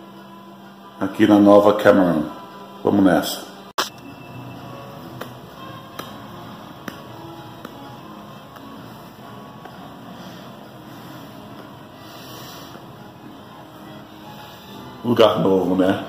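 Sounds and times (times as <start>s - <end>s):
faint background music: 0.0s - 16.0s.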